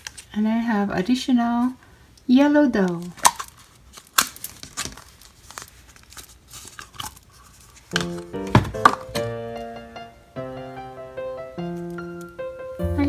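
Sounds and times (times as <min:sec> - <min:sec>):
plastic tubs clicking and scraping: 0:02.9 - 0:09.3
piano-like music: 0:08.0 - 0:13.0.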